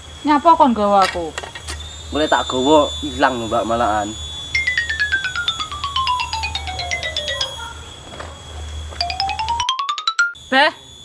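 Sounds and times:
tinkly beeping notes: 0.3 - 10.7.

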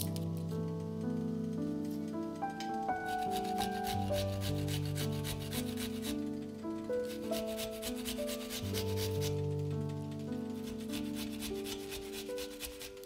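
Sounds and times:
garlic rasping on grater: 2.9 - 6.2, 7.0 - 9.4, 10.6 - 13.0.

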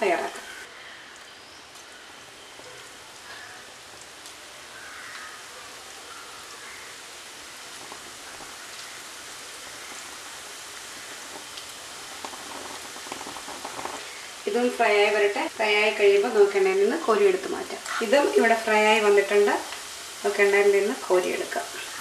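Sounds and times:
oil sizzling in deep fryer: 0.0 - 22.0.

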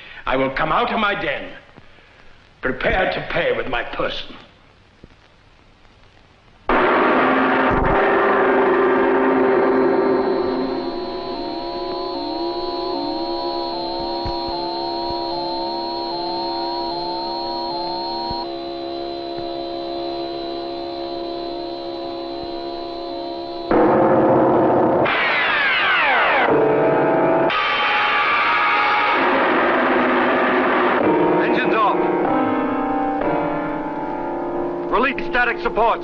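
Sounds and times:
dense electronic tones with sweeps: 6.7 - 36.0
electronic held tones: 7.7 - 23.9.

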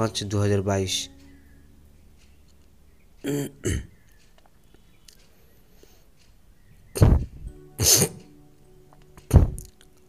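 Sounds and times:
man clearing his throat: 3.2 - 3.9, 7.8 - 8.2.

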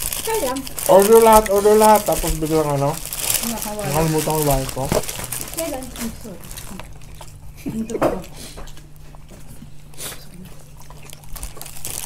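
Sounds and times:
steady low hum: 0.0 - 12.0
person speaking: 0.3 - 6.4
chewing clicks and smacks: 6.5 - 12.0.

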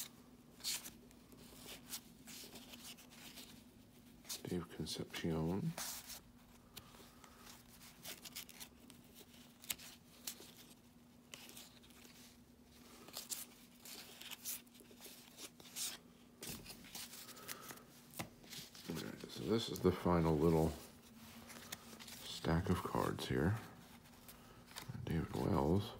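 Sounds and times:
cards flipped through by hand: 0.0 - 3.6, 5.6 - 20.2, 20.8 - 25.6.

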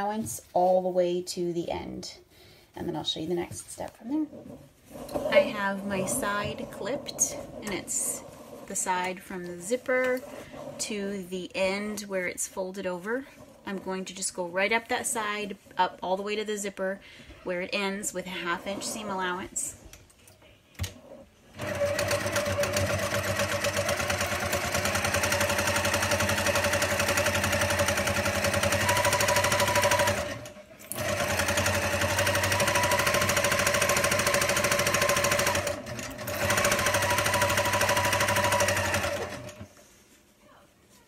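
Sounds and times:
sewing machine stitching: 21.5 - 39.8.

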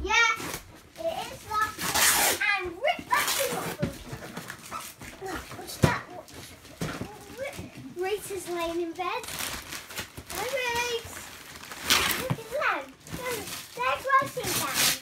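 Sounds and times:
wrapping paper rustling and tearing: 0.2 - 15.0.

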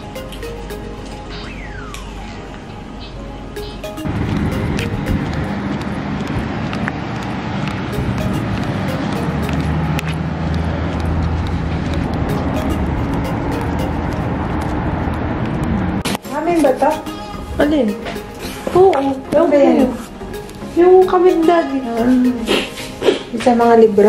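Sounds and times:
road traffic noise: 0.0 - 23.6
background music: 0.0 - 24.0
vehicle passing: 4.1 - 17.6.

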